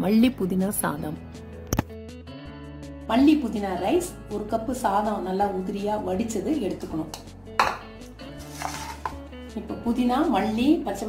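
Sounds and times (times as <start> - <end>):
quiet background music: 0.0 - 11.0
ceramic dish knocking on stone: 7.6 - 9.2.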